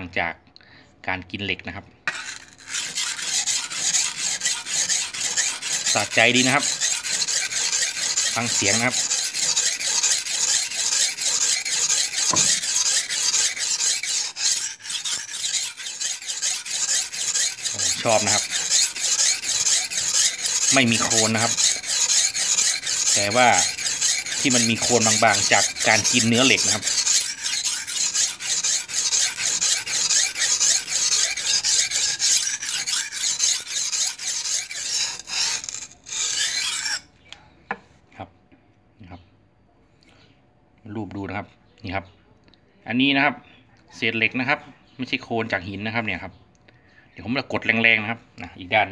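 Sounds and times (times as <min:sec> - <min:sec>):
knife rasping on sharpening stone: 0:02.1 - 0:37.1.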